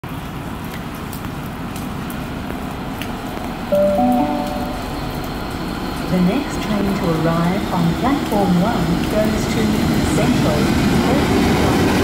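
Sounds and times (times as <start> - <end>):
public-address chime: 3.7 - 5.1.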